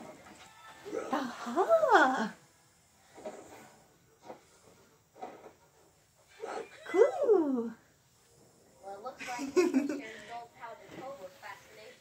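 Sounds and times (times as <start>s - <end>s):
person imitating cartoon dog whine: 6.4s - 7.7s.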